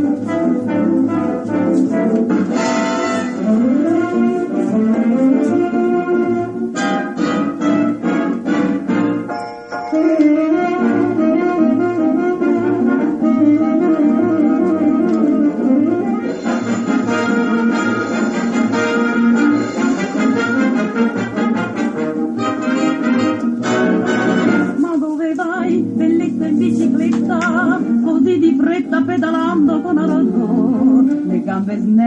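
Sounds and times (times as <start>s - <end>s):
wind instrument melody: 0.0s - 28.7s.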